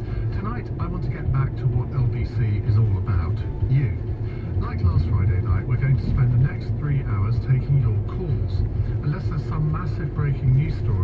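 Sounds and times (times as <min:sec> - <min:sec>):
car engine and tyres rumbling: 0:00.0 - 0:11.0
radio presenter speaking: 0:00.2 - 0:11.0.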